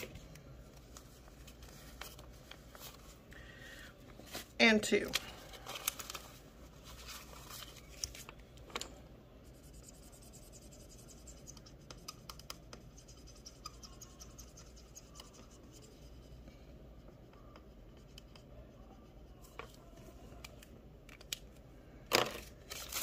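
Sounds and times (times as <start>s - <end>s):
marker pen scratching on paper: 9.4s - 16.4s.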